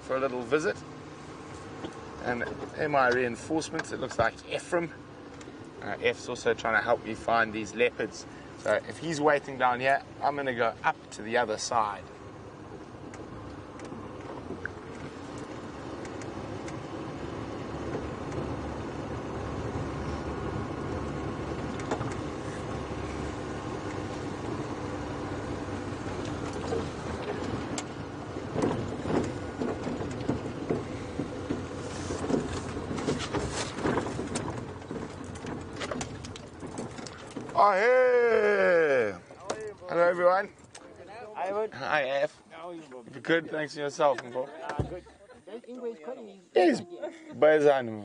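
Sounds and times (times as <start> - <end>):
vehicle engine and tyre noise: 0.0 - 45.4
knocks and rattles from bumps: 25.9 - 37.8.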